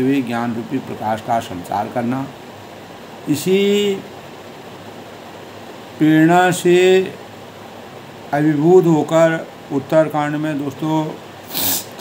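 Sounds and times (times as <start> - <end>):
room background hiss: 0.0 - 12.0.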